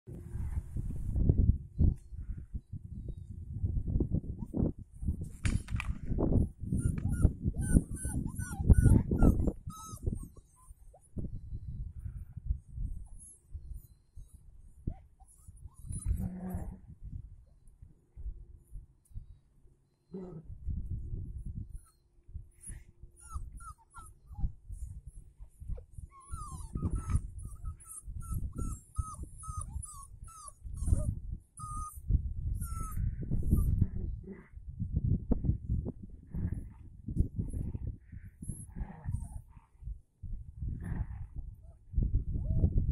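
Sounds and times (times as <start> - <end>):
puppies yipping and squealing: 6.7 - 11.1, 13.1 - 16.3, 22.7 - 33.7.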